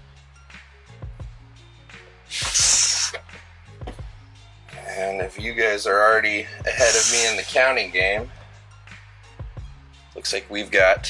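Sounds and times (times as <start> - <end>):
snake hissing: 2.1 - 3.4, 6.4 - 9.4.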